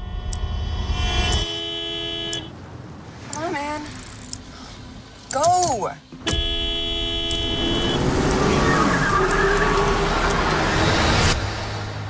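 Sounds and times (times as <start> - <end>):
car horns honking: 0.0 - 2.6, 6.2 - 11.3.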